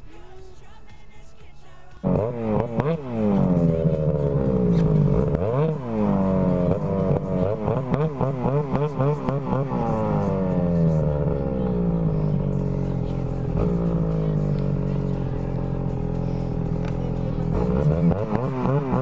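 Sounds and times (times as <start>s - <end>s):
snowmobile engine revving: 2.0s - 19.0s.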